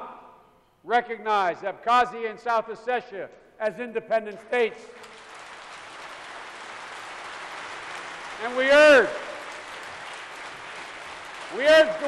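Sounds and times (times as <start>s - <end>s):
crowd applause: 5.0s - 12.0s.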